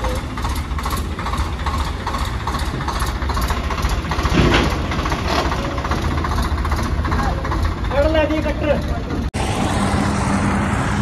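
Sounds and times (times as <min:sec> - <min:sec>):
tractor diesel engine running: 0:00.0 - 0:11.0.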